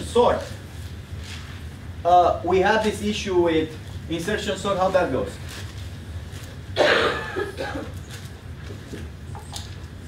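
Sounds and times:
low room hum: 0.0 - 10.0
person coughing: 6.8 - 7.9.

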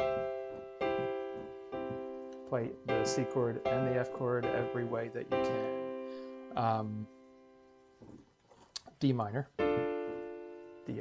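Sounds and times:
piano chord ringing: 0.0 - 8.0, 9.6 - 11.0.

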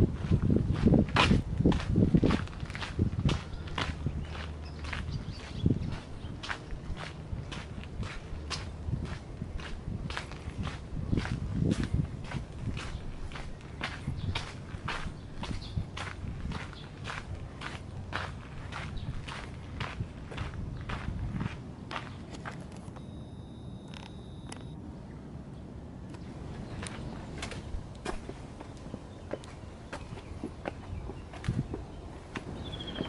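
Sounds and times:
footsteps on gritty dirt path: 0.0 - 23.0, 26.7 - 33.0.

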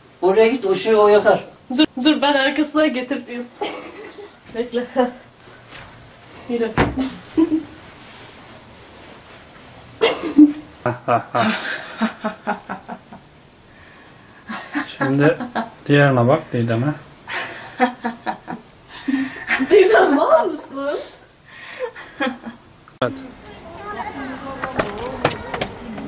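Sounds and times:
woman laughing: 3.6 - 5.1, 7.0 - 7.8, 10.0 - 10.6, 17.3 - 21.0.

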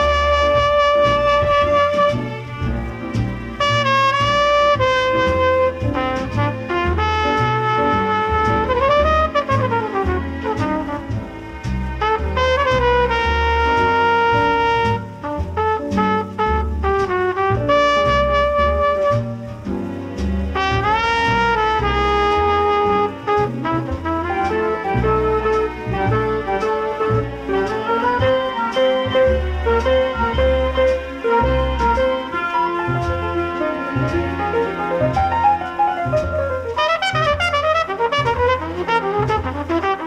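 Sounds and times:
bass notes: 0.0 - 40.0
jazz trumpet melody: 0.0 - 40.0
orchestra: 0.0 - 40.0.

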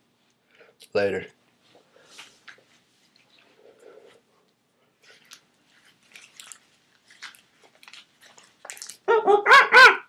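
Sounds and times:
rubber mask rustling: 5.0 - 9.1
dog-like yelping barks: 9.1 - 10.0.

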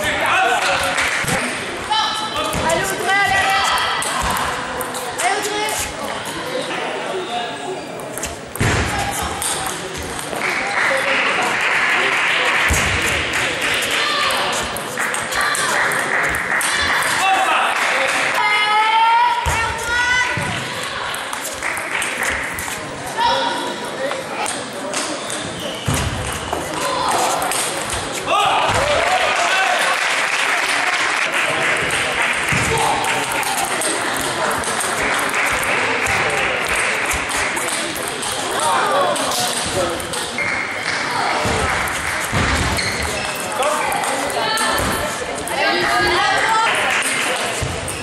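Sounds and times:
steady chatter in a hall: 0.0 - 48.0.

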